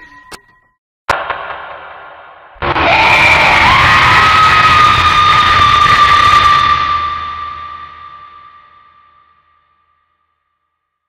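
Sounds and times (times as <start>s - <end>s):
harsh burst of noise: 1.1s - 8.6s
loud shriek: 2.6s - 10.4s.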